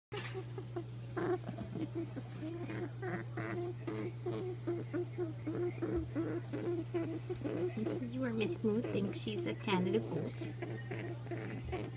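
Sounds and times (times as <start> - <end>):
rabbit honking: 0.1 - 11.9.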